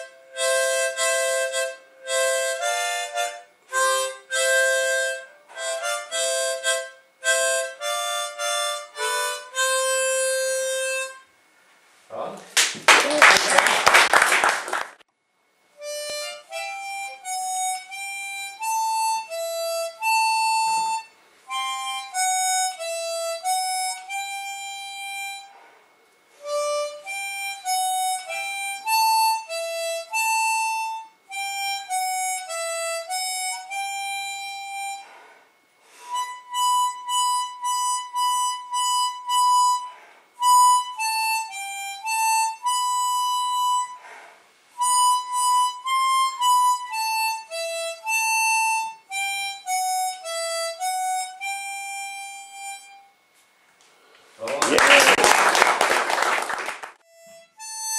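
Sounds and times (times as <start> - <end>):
harmonica melody: 0.0 - 11.5, 15.7 - 57.9.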